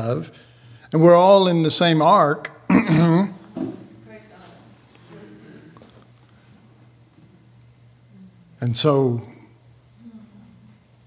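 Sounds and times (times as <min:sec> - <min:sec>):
throat clearing: 0:02.7 - 0:03.4.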